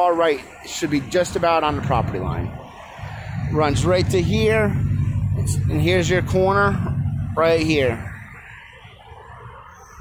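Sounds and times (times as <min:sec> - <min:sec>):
low outdoor rumble: 0:01.2 - 0:08.4.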